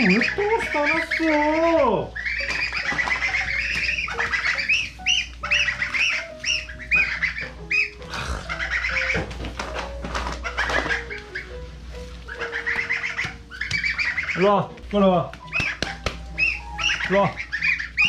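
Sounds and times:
goslings peeping: 0.0s - 18.0s
soft background music: 0.0s - 18.0s.

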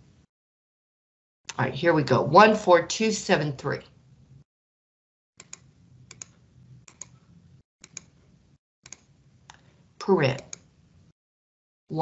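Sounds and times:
faint keystroke clicks: 5.4s - 7.2s, 7.8s - 8.1s.

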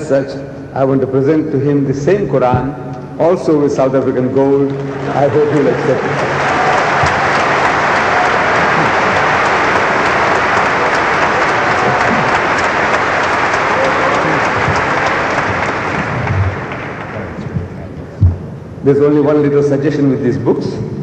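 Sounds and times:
audience applauding: 4.4s - 17.9s.

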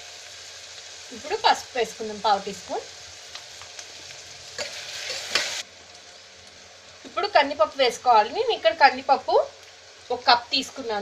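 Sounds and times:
vegetables sizzling in oil: 0.0s - 11.0s.

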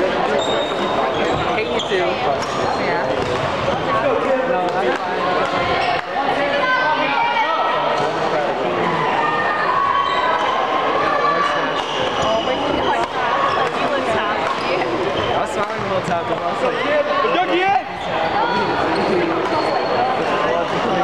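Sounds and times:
sneakers squeaking on wooden floor: 0.3s - 3.6s, 11.7s - 13.8s.

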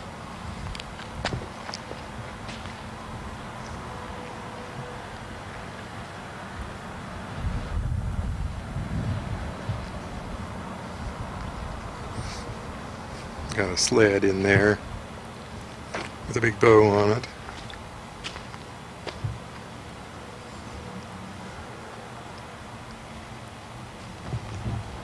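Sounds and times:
wind buffeting microphone: 0.0s - 3.9s, 6.6s - 15.1s, 24.0s - 25.0s
faint footsteps: 0.5s - 4.4s, 15.5s - 16.3s, 17.2s - 19.7s
steady camcorder hum: 9.2s - 25.0s.

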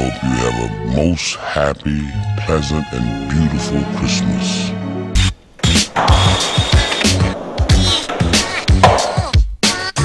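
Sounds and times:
skateboard rolling and snapping: 5.6s - 10.0s.

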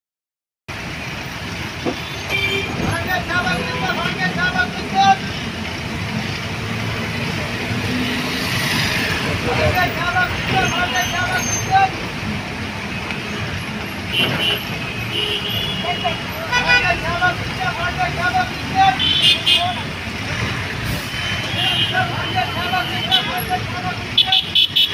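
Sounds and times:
bus engine and road noise: 0.7s - 24.9s
man calling out: 2.8s - 5.4s, 9.4s - 12.1s, 15.6s - 20.0s, 21.5s - 24.8s.

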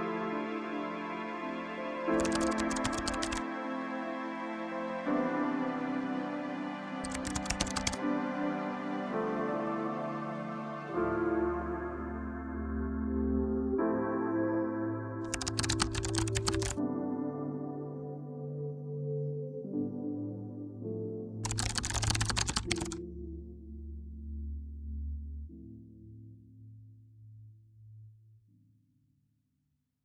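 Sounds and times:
background music: 0.0s - 26.7s
computer keyboard typing: 2.2s - 3.4s, 7.0s - 8.0s, 15.2s - 16.8s, 21.4s - 23.0s.

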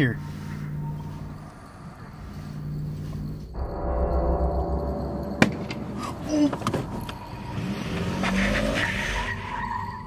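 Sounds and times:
tyres squealing on pavement: 7.2s - 10.0s.

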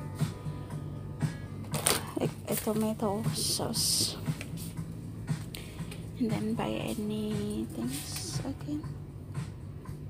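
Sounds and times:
background music: 0.0s - 10.0s
low steady hum: 0.0s - 10.0s.

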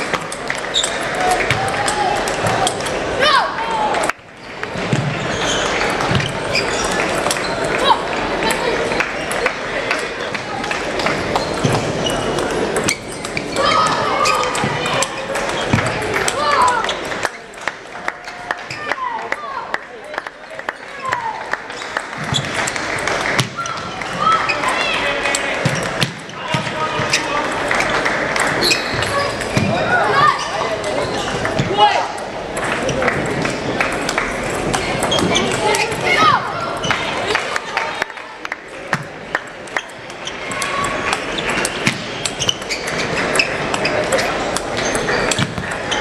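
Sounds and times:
voices in a hall: 0.0s - 46.0s.

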